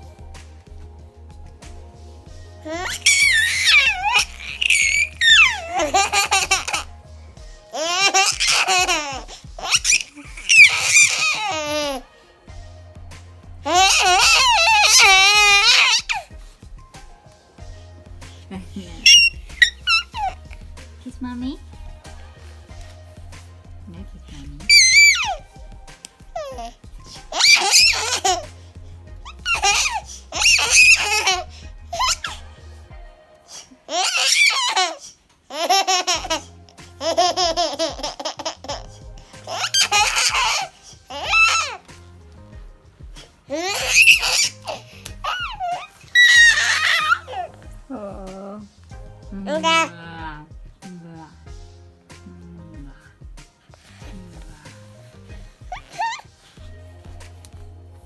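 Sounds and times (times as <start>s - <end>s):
baby laughing: 2.6s - 7.0s, 7.7s - 12.1s, 13.6s - 16.4s, 18.2s - 20.9s, 24.1s - 32.4s, 33.5s - 42.0s, 43.1s - 47.7s, 49.5s - 49.9s, 55.4s - 56.6s.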